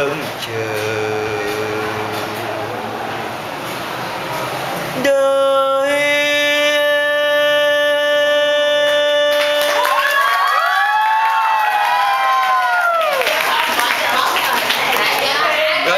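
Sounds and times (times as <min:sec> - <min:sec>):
man singing a long note: 0:00.0 - 0:02.8, 0:05.0 - 0:10.0
applause: 0:08.9 - 0:15.6
audience cheering and whooping: 0:09.4 - 0:15.4.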